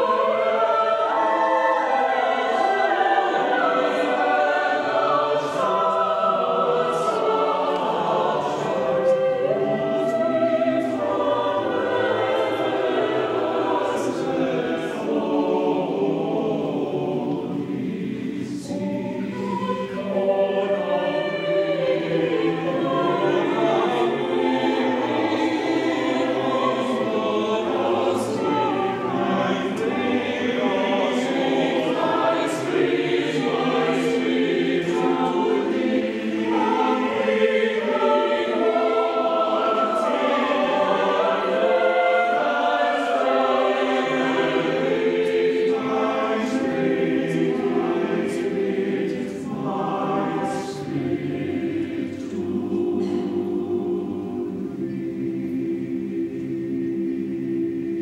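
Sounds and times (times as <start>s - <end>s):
church choir singing: 0.0s - 58.0s.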